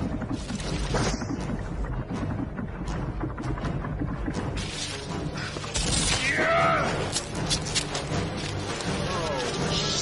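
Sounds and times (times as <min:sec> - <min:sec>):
low rumble: 0:00.0 - 0:05.4
background score music: 0:00.0 - 0:10.0
branches cracking and snapping: 0:05.6 - 0:09.7.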